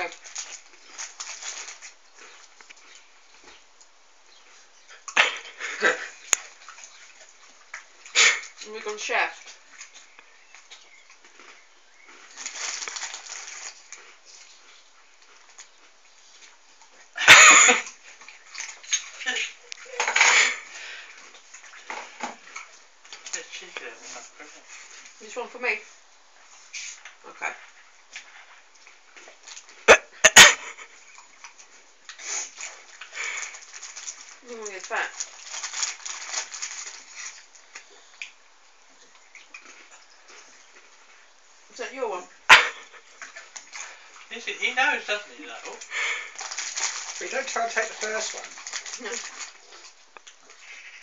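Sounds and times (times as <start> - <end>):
snack packet crackling: 0.1 - 2.3, 11.5 - 14.2, 33.2 - 37.5, 45.9 - 49.8.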